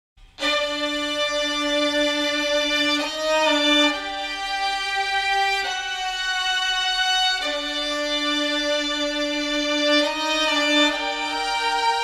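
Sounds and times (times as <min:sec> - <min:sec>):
violin sustained bowed notes: 0:00.4 - 0:12.0.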